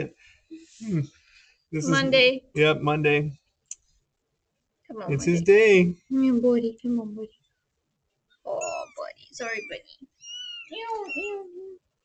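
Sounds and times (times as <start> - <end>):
kitten crying: 8.6 - 11.7.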